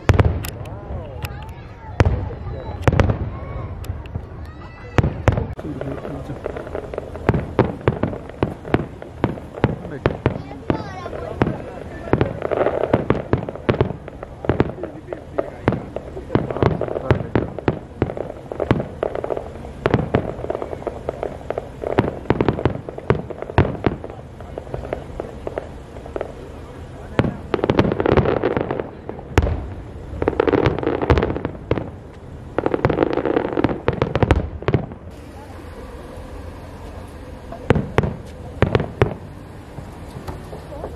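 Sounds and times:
distant fireworks bursting: 0.0s - 40.9s.

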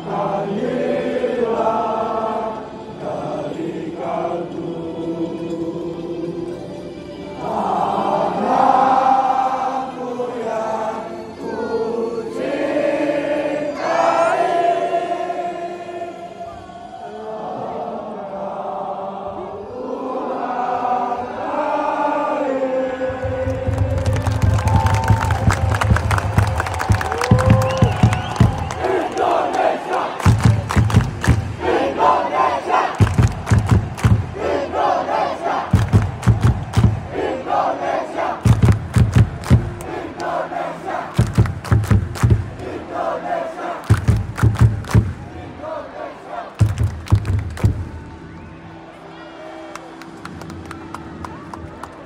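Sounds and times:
crowd chanting rhythmically: 0.0s - 6.4s, 7.4s - 48.4s
crowd singing in unison: 0.0s - 48.4s
low thudding beats: 23.2s - 37.6s, 38.4s - 40.4s, 41.1s - 43.1s, 43.8s - 45.6s, 46.6s - 48.2s
hands clapping in time: 23.3s - 31.8s, 32.9s - 34.5s, 35.7s - 37.2s, 38.4s - 40.4s, 41.1s - 42.8s, 43.8s - 45.4s, 46.6s - 48.5s, 49.7s - 52.0s.

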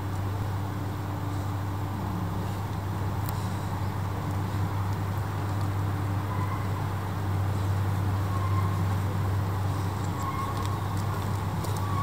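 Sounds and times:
distant city traffic rumble: 0.0s - 12.0s.

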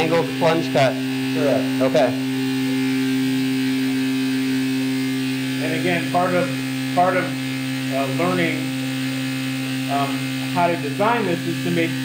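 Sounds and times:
cutting tool humming: 0.0s - 12.0s.

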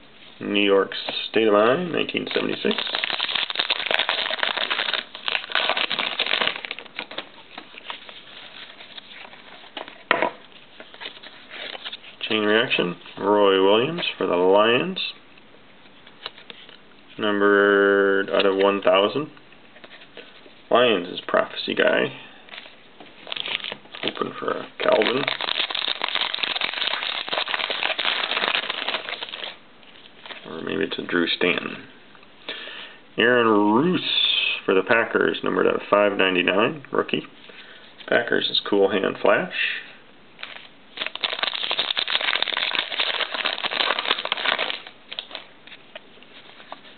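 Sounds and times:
card pack wrapper crinkling: 2.0s - 12.1s, 22.5s - 29.6s, 40.4s - 46.9s
cards being handled: 2.2s - 12.1s, 22.5s - 29.6s, 40.4s - 46.9s.

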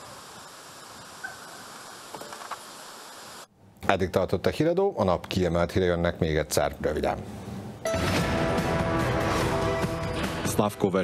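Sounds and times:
steady outdoor hiss: 0.0s - 4.4s.

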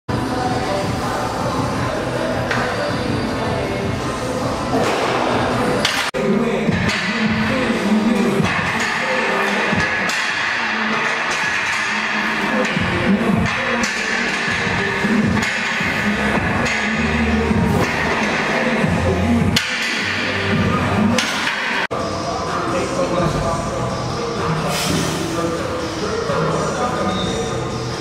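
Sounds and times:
music: 0.1s - 28.0s.

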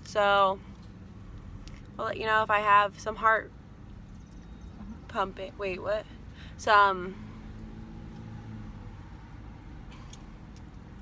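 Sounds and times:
low rumble inside car cabin: 0.0s - 11.0s.

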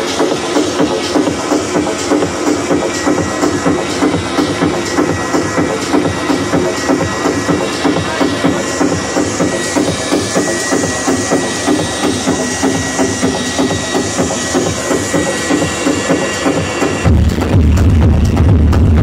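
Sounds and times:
techno music with steady beat: 0.0s - 19.0s
sustained high synth tone: 0.1s - 17.3s.

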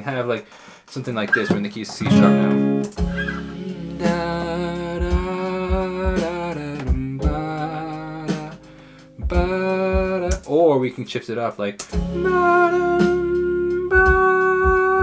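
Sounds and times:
person speaking: 0.0s - 4.2s
backing track with drum thumps: 1.2s - 10.6s, 12.9s - 15.0s
man singing wordless melody: 3.4s - 11.1s, 12.0s - 15.0s.

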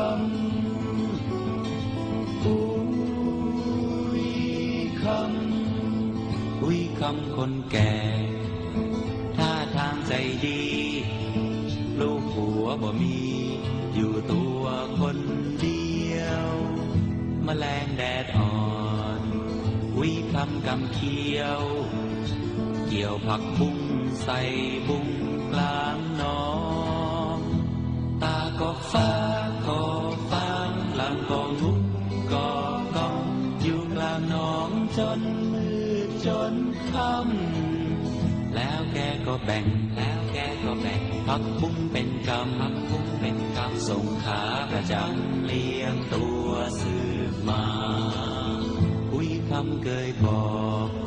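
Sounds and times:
person singing pop song: 0.0s - 51.0s.

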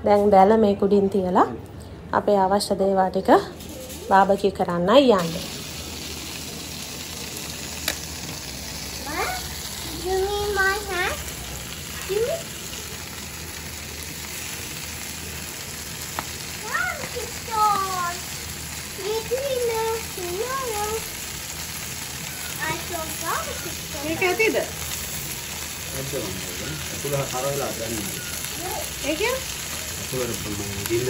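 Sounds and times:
meat sizzling on a grill: 3.6s - 31.0s.

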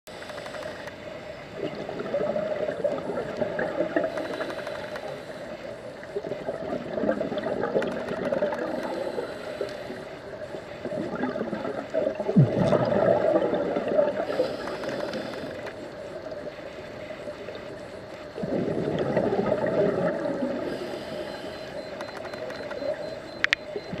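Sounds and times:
steady hum: 0.1s - 24.0s
bubbles gurgling underwater: 1.6s - 4.2s, 6.2s - 9.0s, 10.8s - 14.4s, 18.4s - 20.8s
sharp clicks: 21.9s - 23.7s.

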